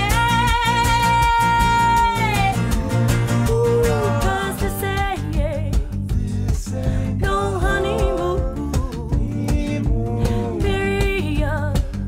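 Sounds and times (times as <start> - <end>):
strummed acoustic guitars: 0.0 - 12.0
voices singing in harmony: 1.7 - 5.3, 6.2 - 11.9
drum hits: 4.6 - 12.0.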